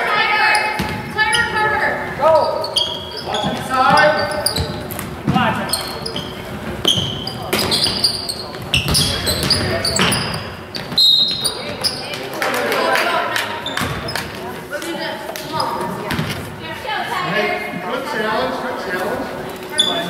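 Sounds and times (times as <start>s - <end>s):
basketball bouncing on hardwood floor: 6.8s - 10.2s.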